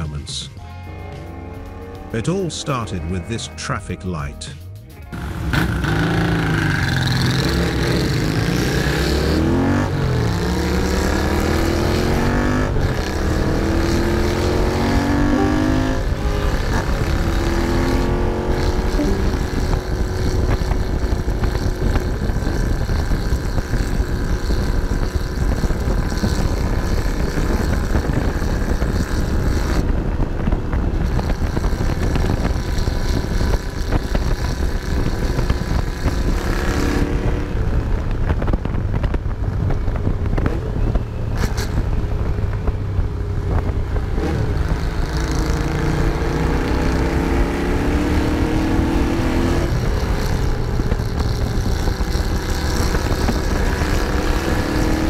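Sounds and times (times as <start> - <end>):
motorcycle engine accelerating: 5.0 - 55.0.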